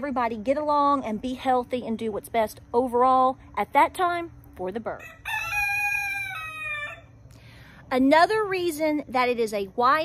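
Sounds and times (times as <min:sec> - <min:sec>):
rooster crowing: 0:05.0 - 0:07.2.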